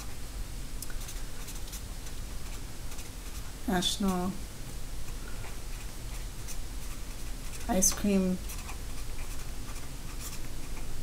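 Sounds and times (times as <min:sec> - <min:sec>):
marker writing on paper: 0:05.7 - 0:10.9.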